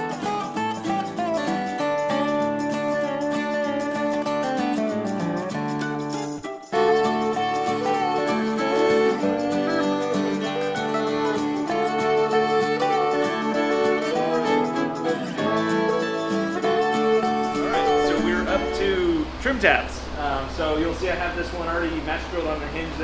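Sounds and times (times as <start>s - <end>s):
bluegrass tune with guitar and fiddle: 0.0s - 19.7s.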